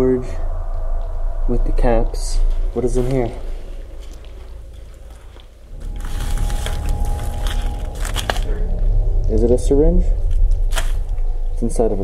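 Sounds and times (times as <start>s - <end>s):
low handling rumble: 0.0s - 12.0s
plastic packaging crinkling: 5.7s - 8.6s.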